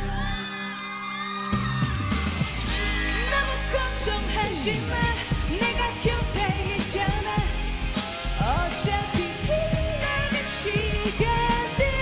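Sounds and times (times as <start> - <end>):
band with electric bass: 1.5 - 12.0
woman singing pop-rock ballad: 3.1 - 12.0.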